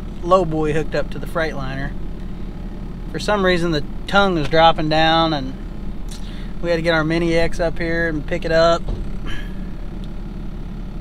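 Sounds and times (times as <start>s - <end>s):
truck engine idling: 0.0s - 11.0s.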